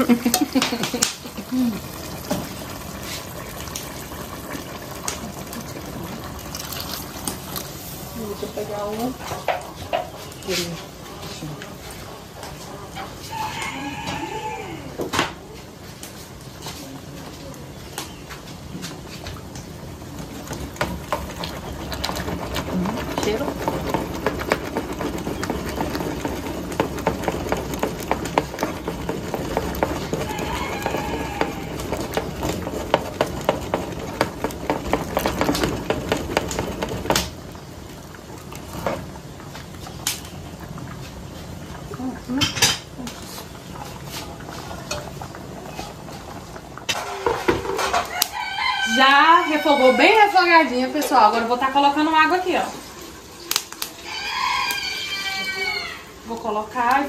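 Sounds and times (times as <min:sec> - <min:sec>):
rooster crowing: 0:13.2 - 0:15.1, 0:29.8 - 0:32.2, 0:47.1 - 0:50.6, 0:53.9 - 0:56.2.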